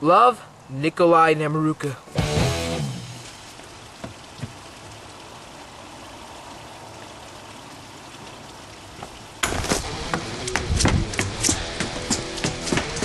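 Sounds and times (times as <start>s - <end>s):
running water rushing: 0.0s - 13.0s.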